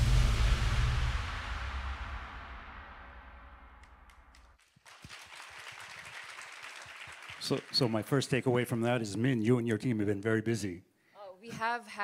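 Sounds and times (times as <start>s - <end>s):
music: 0.0s - 4.4s
audience applause: 4.3s - 8.6s.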